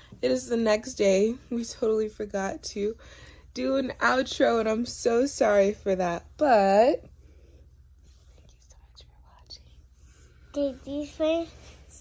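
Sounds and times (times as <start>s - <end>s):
faint low hum: 0.0s - 12.0s
soft whisper: 8.0s - 12.0s.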